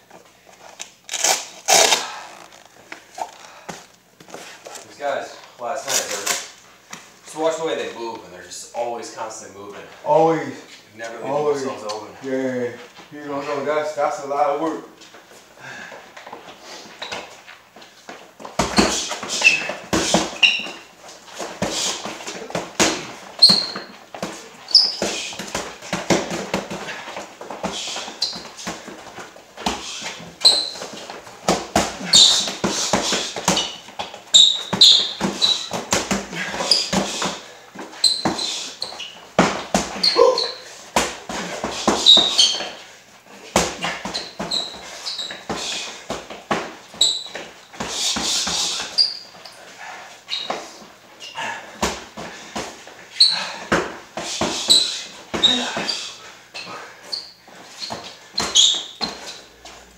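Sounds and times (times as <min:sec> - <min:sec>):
sneakers squeaking on floor: 0:16.3 - 0:59.9
boxing gloves punching: 0:18.5 - 0:20.8, 0:21.4 - 0:42.8, 0:43.5 - 0:49.0.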